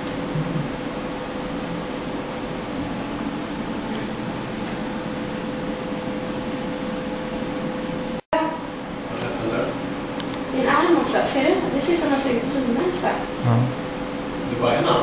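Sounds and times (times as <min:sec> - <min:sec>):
fan-like hiss and hum: 0:00.0 - 0:15.0.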